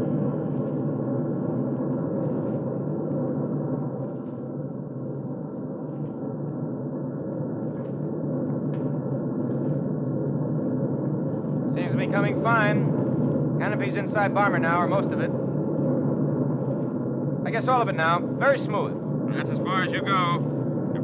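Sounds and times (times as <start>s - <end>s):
faint recording crackle: 1.9s - 4.5s
bomber engines droning: 11.2s - 21.0s.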